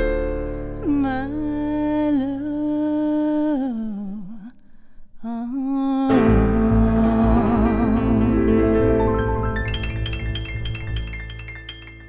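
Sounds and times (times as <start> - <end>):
person humming with vibrato: 5.2 - 8.9.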